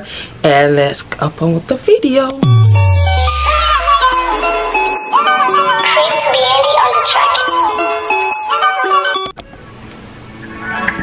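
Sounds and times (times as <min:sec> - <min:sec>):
background music with held notes: 0:02.4 - 0:09.4.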